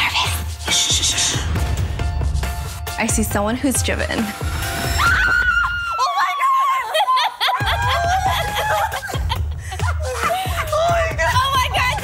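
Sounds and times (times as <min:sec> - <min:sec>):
young woman screaming with delight: 0:05.0 - 0:09.0.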